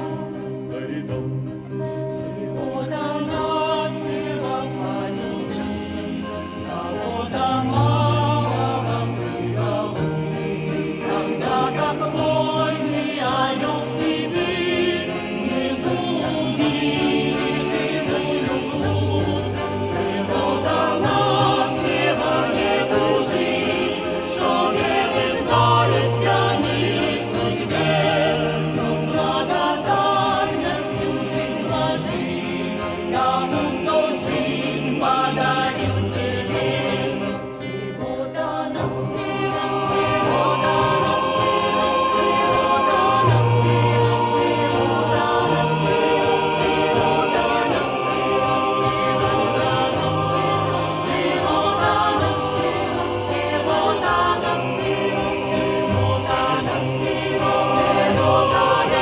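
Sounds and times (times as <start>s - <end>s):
mixed choir singing in harmony: 0.0s - 59.0s.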